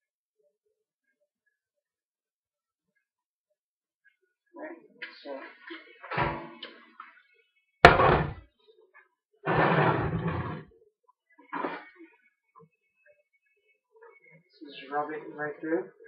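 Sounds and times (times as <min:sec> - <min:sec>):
metal baking trays clattering: 0:06.0 - 0:06.6, 0:07.9 - 0:08.4.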